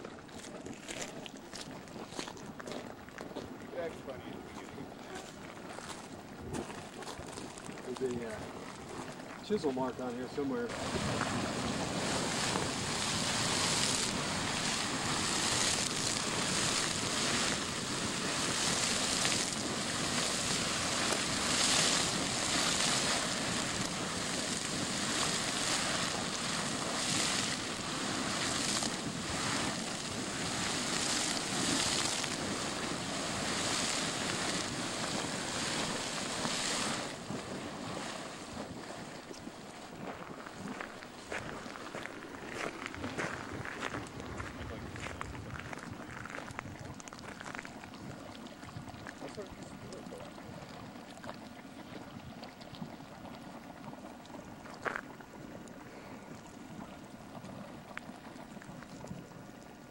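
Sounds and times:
geyser spraying water and steam: 0.2 - 59.9.

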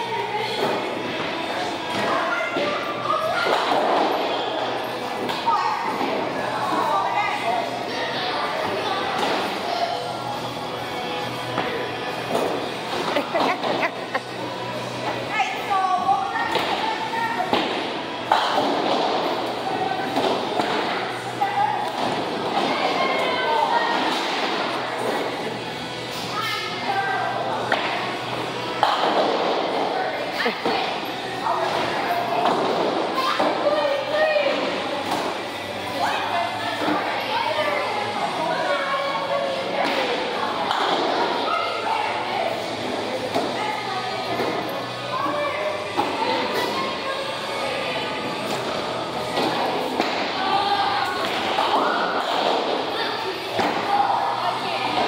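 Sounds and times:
background chatter: 0.0 - 55.0
music: 0.0 - 55.0.

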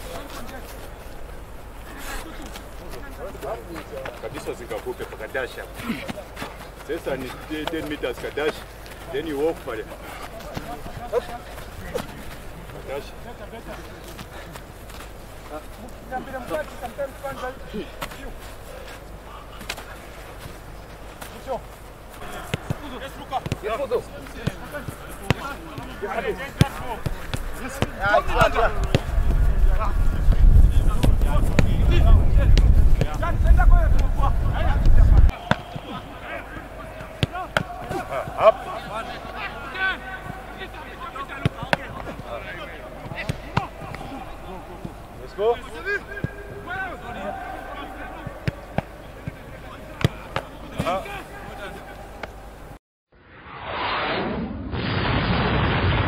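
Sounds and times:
footballs being kicked: 2.3 - 15.6, 22.1 - 38.5
players calling out: 21.1 - 30.3, 33.0 - 52.7
wind buffeting microphone: 28.1 - 35.3
whoosh: 53.1 - 56.0.

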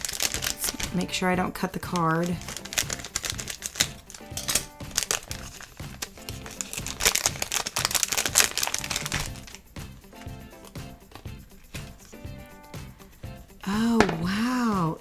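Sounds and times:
scissors cutting bag: 0.0 - 1.0, 1.8 - 9.6
foil plastic bag crinkling: 0.0 - 9.6
quiet background music: 0.0 - 15.0.

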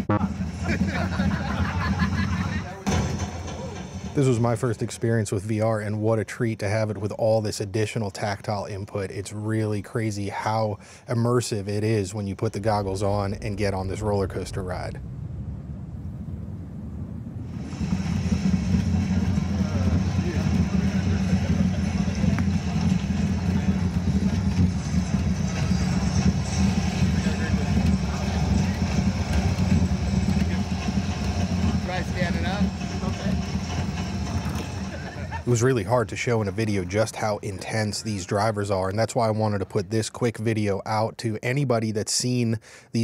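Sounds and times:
heavy low rumble: 11.8 - 37.6
faint voices: 18.0 - 38.2.

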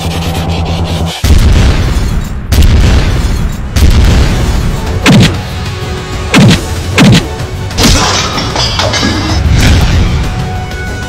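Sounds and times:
deep boom hits: 1.2 - 5.4.

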